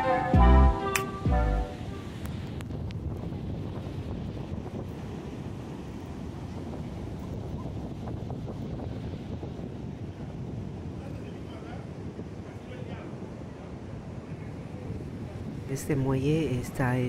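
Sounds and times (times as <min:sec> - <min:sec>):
ocean surf washing in: 0:00.0 - 0:17.0
wind buffeting microphone: 0:00.0 - 0:17.0.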